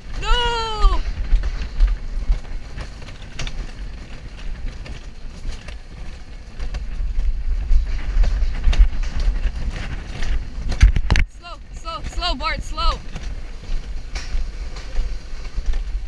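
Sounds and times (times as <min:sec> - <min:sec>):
coaster car rumbling on rail track: 0:00.0 - 0:16.0.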